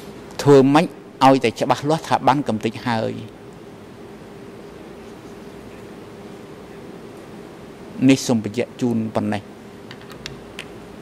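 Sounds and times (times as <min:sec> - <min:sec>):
low electrical hum: 0:00.0 - 0:11.0
man speaking: 0:00.4 - 0:03.3, 0:08.0 - 0:09.5.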